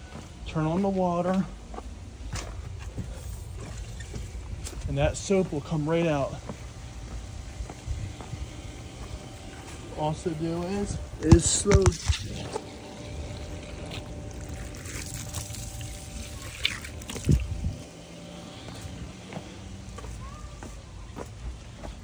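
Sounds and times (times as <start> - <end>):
water running through a hose: 8.2 - 19.1.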